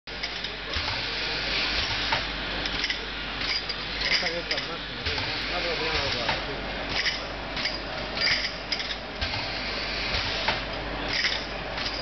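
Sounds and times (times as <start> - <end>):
filling machine running: 0.1 - 12.0.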